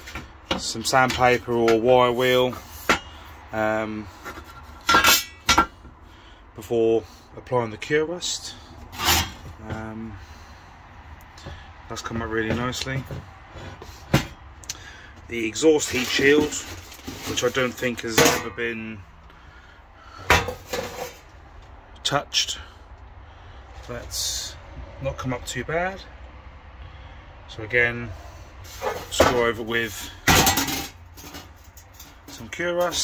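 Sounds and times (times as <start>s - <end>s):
sheet metal clattering on workbench: 30.2s - 33.0s.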